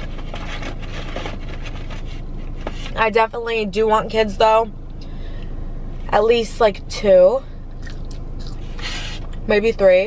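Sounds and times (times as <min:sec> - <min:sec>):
steady low hum: 0:00.0 - 0:10.0
chewing with crackling: 0:07.7 - 0:09.3.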